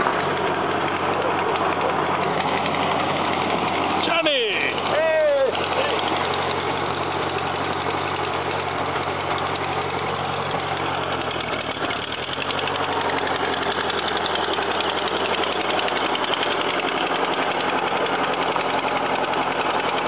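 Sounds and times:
tractor engine running: 0.0s - 20.0s.

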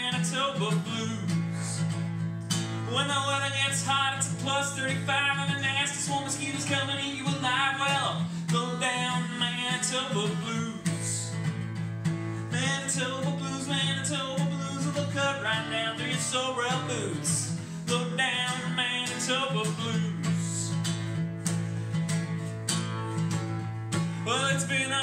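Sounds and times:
man singing: 0.0s - 2.0s, 2.7s - 11.6s, 12.3s - 21.1s, 24.0s - 25.0s
acoustic guitar strumming: 0.0s - 25.0s.

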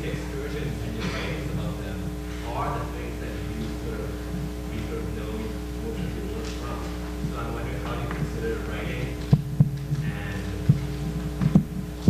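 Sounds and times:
electrical hum: 0.0s - 12.0s
microphone handling thumps: 3.7s - 12.0s.

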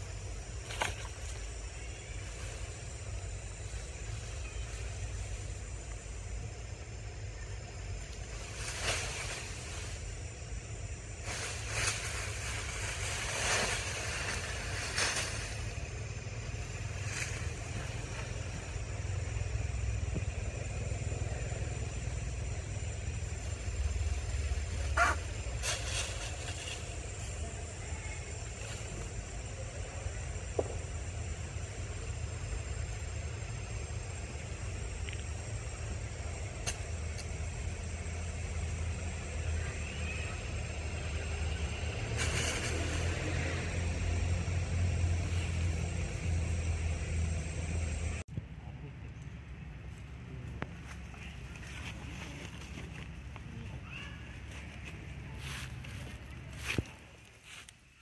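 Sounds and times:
low outdoor rumble: 0.0s - 58.0s.

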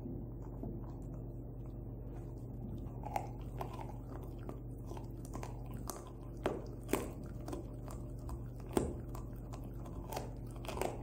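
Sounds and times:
dog gnawing bone: 0.4s - 11.0s.

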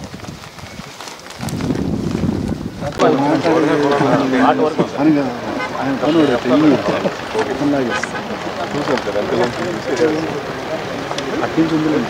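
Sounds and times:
steady background noise: 2.3s - 12.0s
men talking: 2.8s - 12.0s.

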